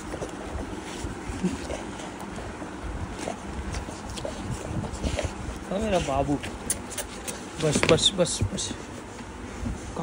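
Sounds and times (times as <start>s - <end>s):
microphone rubbing against fur: 0.0s - 10.0s.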